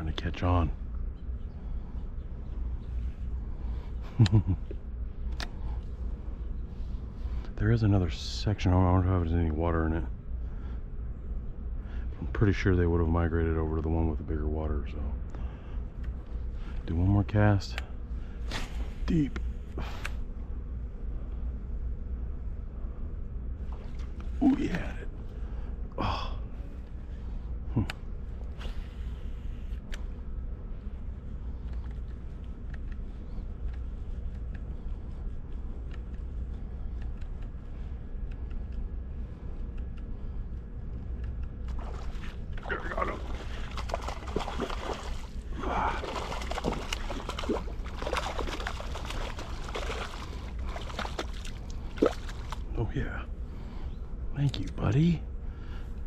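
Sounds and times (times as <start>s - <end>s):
steady low rumble: 0.0s - 56.0s
fish splashing at water surface: 41.7s - 52.7s.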